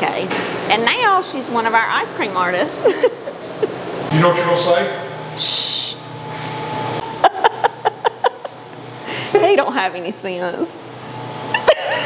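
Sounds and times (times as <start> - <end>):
steady low hum: 0.0 - 12.0
person laughing: 2.8 - 3.8, 7.2 - 8.7, 11.5 - 12.0.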